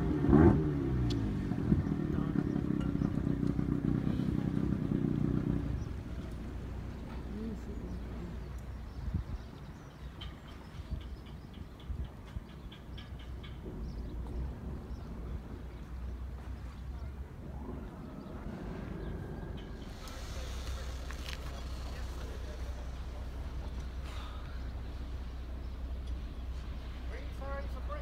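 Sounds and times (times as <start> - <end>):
wind rumble on microphone: 0.0 - 22.8.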